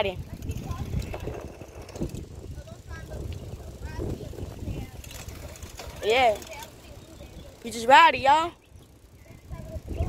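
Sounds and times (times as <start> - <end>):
wind on microphone: 0.0 - 7.6, 8.6 - 10.0.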